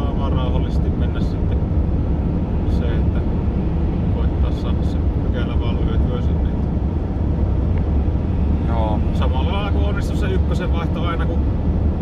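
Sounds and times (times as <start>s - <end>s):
van engine and road drone: 0.0s - 12.0s.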